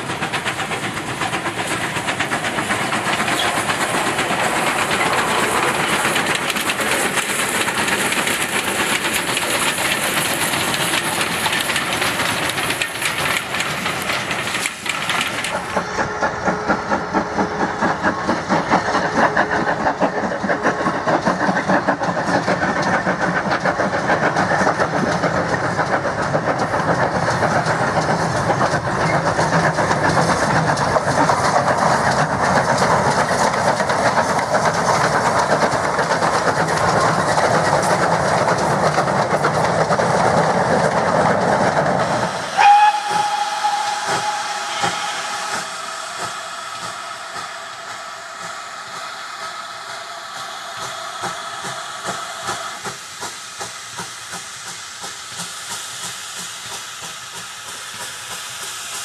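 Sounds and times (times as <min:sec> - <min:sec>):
steam hissing: 0:00.0 - 0:59.0
steam locomotive chuffing: 0:00.0 - 0:59.0
high steam whistle blast: 0:42.1 - 0:52.8.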